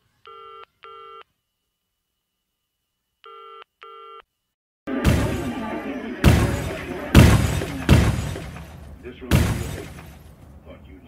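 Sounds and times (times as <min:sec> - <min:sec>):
telephone ringing tone: 0:00.3 - 0:01.3, 0:03.3 - 0:04.2.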